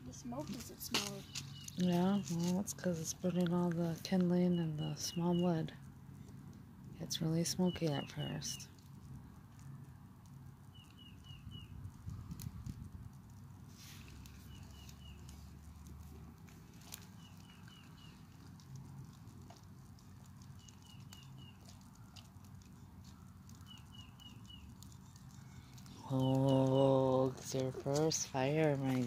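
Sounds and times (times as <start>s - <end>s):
songbird chirping: 0.0s - 5.8s, 7.0s - 8.9s, 10.6s - 11.8s, 13.8s - 15.5s, 16.8s - 18.9s, 20.0s - 29.0s
wood fire crackling: 0.0s - 29.0s.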